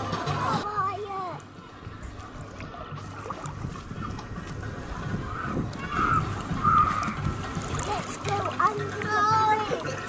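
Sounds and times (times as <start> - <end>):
water splashing: 0.0 - 10.0
high-pitched voices or music: 2.8 - 10.0.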